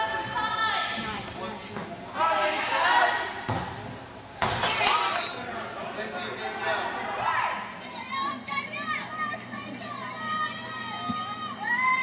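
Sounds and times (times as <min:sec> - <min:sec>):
ball being kicked: 0:03.5 - 0:03.8.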